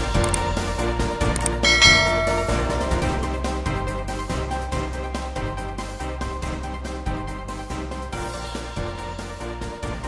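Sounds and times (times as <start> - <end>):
background music: 0.0 - 10.0
bell chime: 1.6 - 3.7.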